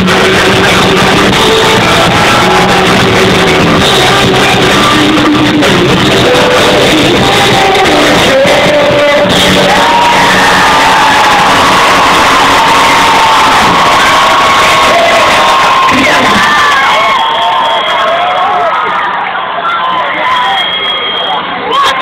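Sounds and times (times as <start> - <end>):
rock band playing live: 0.0 - 17.2
crowd singing along and cheering: 0.0 - 22.0.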